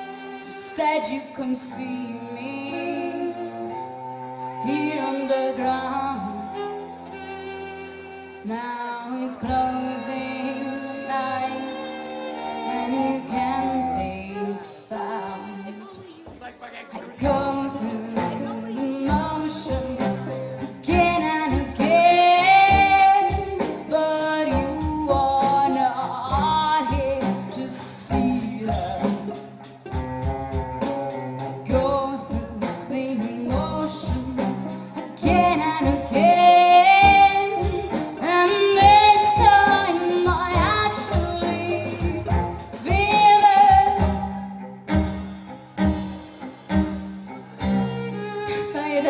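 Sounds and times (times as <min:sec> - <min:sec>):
cello: 0:00.0 - 0:49.0
violin: 0:00.0 - 0:49.0
woman singing: 0:00.5 - 0:03.8, 0:04.6 - 0:06.6, 0:08.4 - 0:12.0, 0:12.6 - 0:29.4, 0:31.6 - 0:44.4, 0:48.5 - 0:49.0
drum kit beat: 0:09.4 - 0:49.0.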